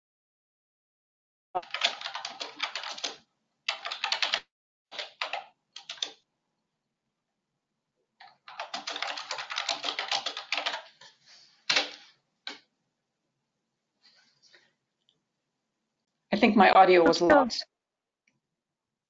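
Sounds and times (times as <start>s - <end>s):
typing on computer keyboard: 1.6s - 6.2s, 8.2s - 12.7s.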